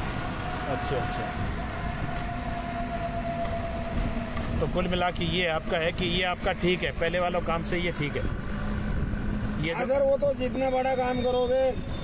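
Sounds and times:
vehicle engine and road noise: 0:00.0 - 0:12.0.

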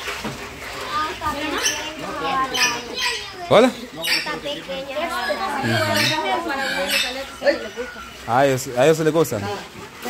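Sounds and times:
people talking indistinctly: 0:00.8 - 0:10.0.

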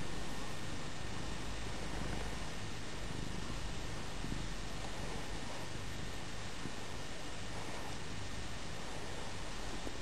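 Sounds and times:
cat purring: 0:00.0 - 0:10.0.

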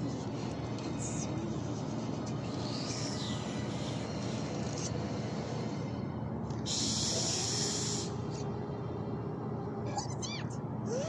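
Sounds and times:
cartoon bats squeaking: 0:09.9 - 0:10.6.

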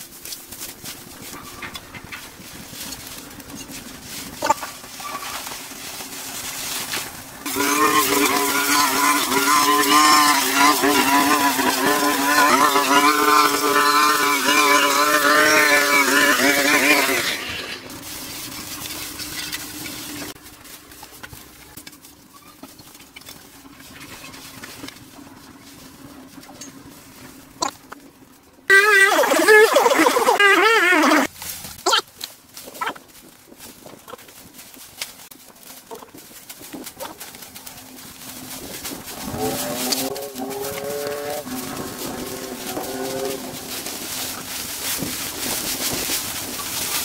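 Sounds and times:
brush cutter engine revving: 0:07.4 - 0:20.4, 0:28.7 - 0:31.3, 0:39.0 - 0:47.0.

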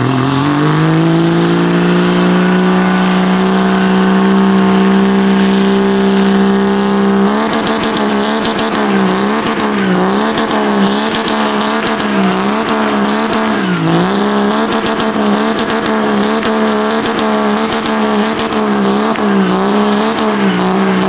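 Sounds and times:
engine crackling: 0:00.0 - 0:21.0
tires spinning: 0:00.0 - 0:21.0
truck engine revving: 0:00.0 - 0:21.0.

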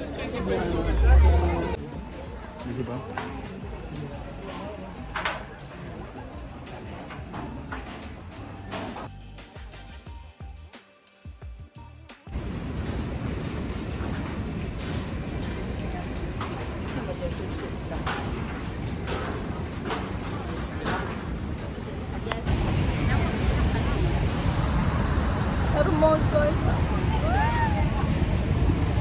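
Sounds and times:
people's voices: 0:00.0 - 0:09.1, 0:12.3 - 0:29.0
music: 0:01.8 - 0:12.9
wind on microphone: 0:17.6 - 0:29.0.

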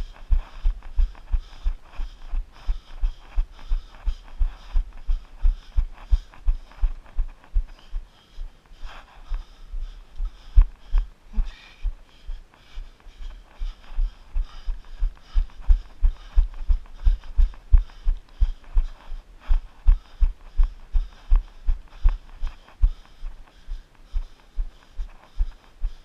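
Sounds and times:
muffled running footfalls: 0:00.0 - 0:12.0, 0:12.6 - 0:26.0.

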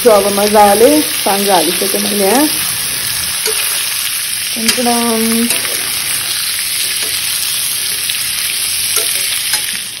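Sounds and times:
food sizzling in hot oil: 0:00.0 - 0:10.0.

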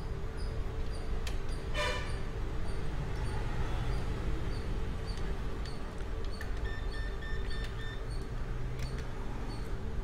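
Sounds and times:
short high electronic beeps: 0:06.6 - 0:08.1.

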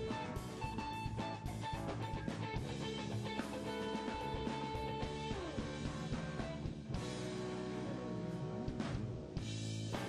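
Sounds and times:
jazz band sustained chords: 0:00.0 - 0:10.0.

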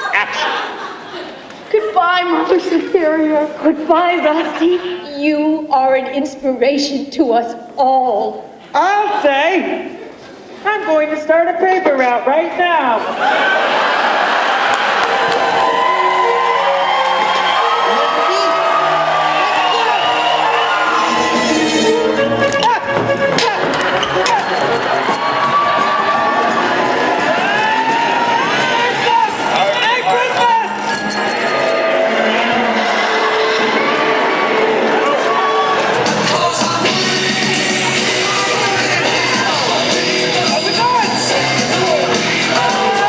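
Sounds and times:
audience cheering: 0:13.2 - 0:21.8.

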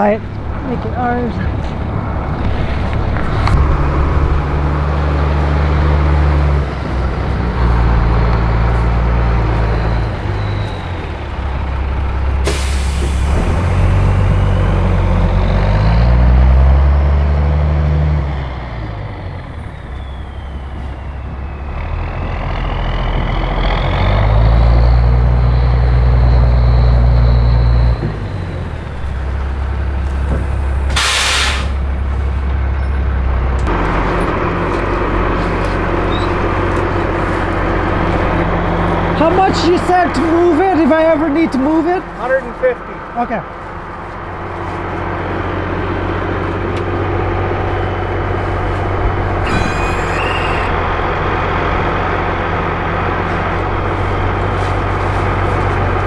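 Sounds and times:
diesel truck engine running: 0:00.0 - 0:56.0
air brake hisses: 0:12.4 - 0:13.3, 0:30.9 - 0:31.8.

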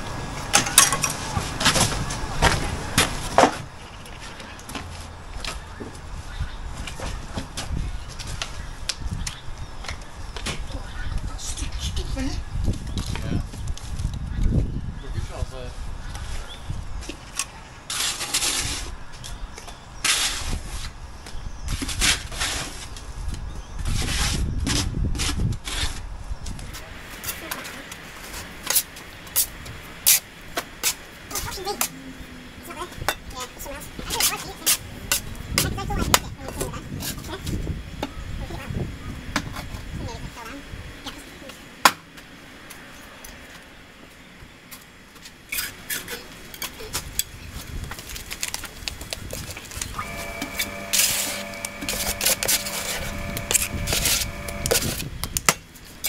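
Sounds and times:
trowel scraping mortar: 0:50.0 - 0:55.0.

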